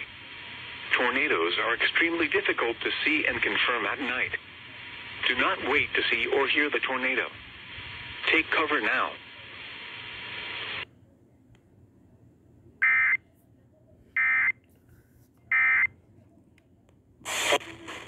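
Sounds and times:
radio hiss: 0.0 - 10.9, 17.2 - 18.0.

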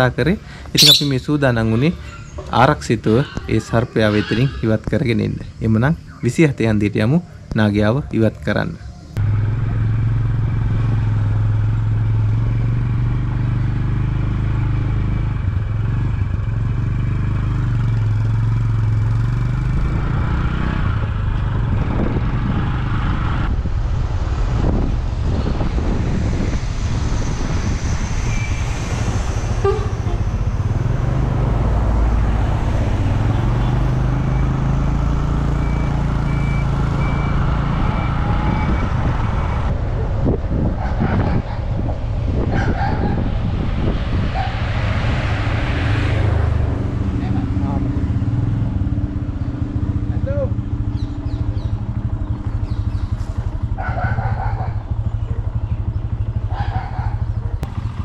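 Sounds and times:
motorcycle engine running: 9.2 - 27.9, 45.3 - 58.0.

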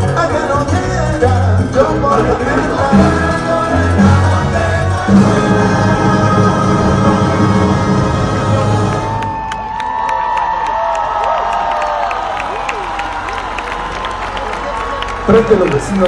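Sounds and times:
salsa orchestra playing: 0.0 - 9.2
crowd cheering and whooping: 5.0 - 16.0
crowd applauding: 8.5 - 16.0.

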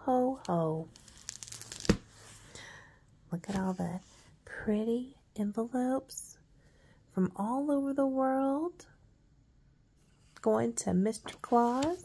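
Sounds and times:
book cover snap: 1.4 - 2.1
paper rustling: 11.2 - 12.0.

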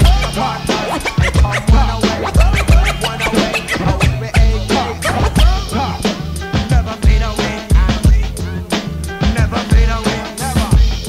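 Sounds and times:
turntable scratching: 0.0 - 6.2
hip-hop beat with heavy bass: 0.0 - 11.0.

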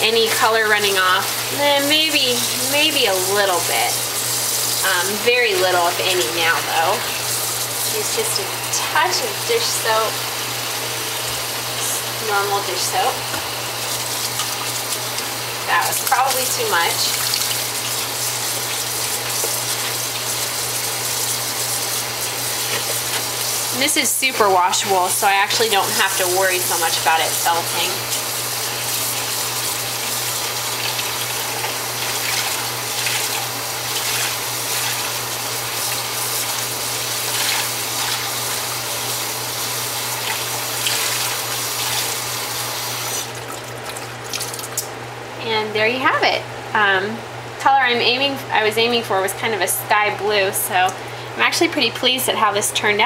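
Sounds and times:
faucet running thin stream: 0.1 - 44.9.

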